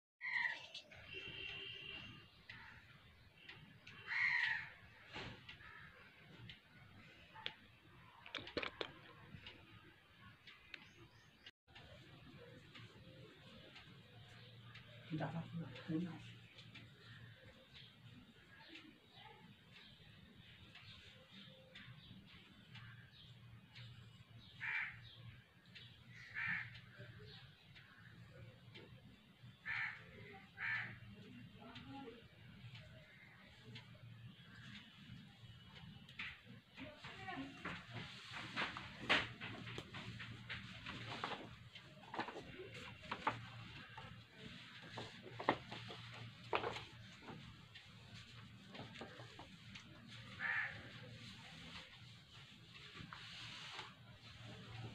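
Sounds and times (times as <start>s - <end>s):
bird calling: 24.4s - 25.2s.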